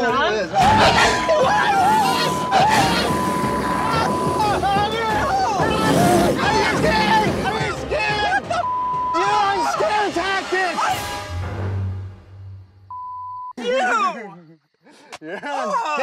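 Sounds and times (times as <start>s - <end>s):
men screaming and yelling: 0.0s - 11.2s, 13.6s - 14.8s, 15.4s - 16.0s
censor bleep: 8.6s - 9.3s, 12.9s - 13.6s.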